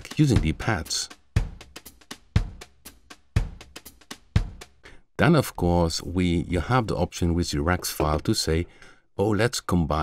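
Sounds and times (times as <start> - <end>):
drum loop: 0.0 - 4.9, 7.5 - 8.4.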